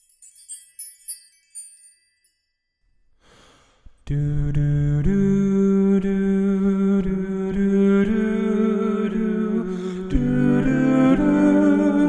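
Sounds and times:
chime music: 0.0s - 2.8s
singer breathing in: 3.2s - 4.0s, 9.7s - 10.1s.

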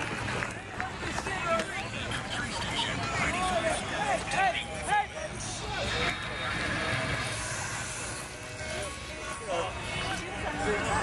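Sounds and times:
indistinct voices talking: 0.5s - 11.0s.

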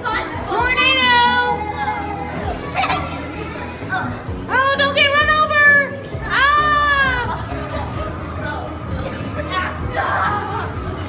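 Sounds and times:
background music: 0.0s - 11.0s
child shouting: 0.8s - 3.2s.

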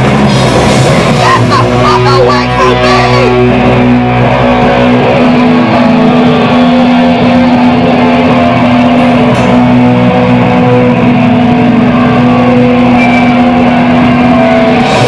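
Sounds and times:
distorted electric guitars droning: 0.0s - 15.0s.

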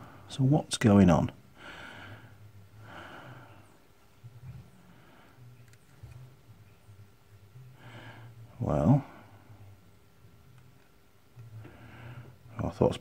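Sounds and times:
faint handling clicks: 5.6s - 6.3s.

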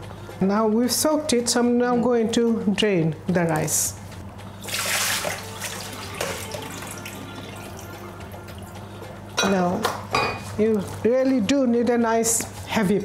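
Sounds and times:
water draining into sink: 4.6s - 7.9s
water rushing through sieve: 4.6s - 7.9s.

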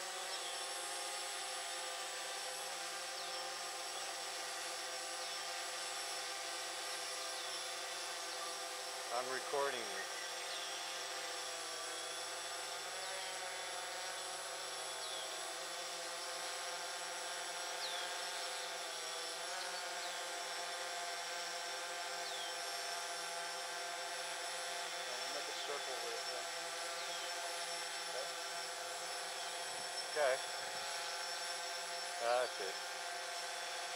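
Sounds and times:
drone propellers humming: 0.0s - 33.9s.

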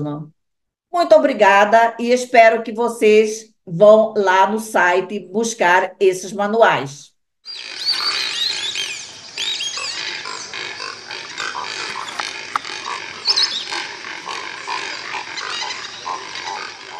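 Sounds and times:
birds chirping and squawking: 7.5s - 16.9s.

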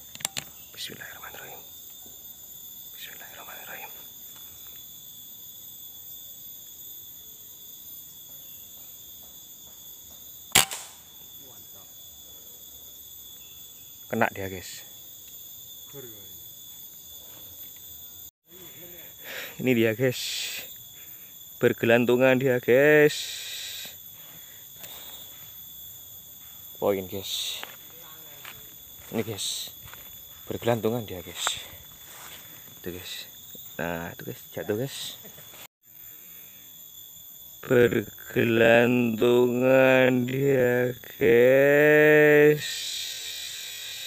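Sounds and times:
high insect drone: 0.0s - 44.0s
air rifle shot: 10.5s - 11.0s
high hiss: 18.5s - 25.6s, 41.8s - 44.0s.

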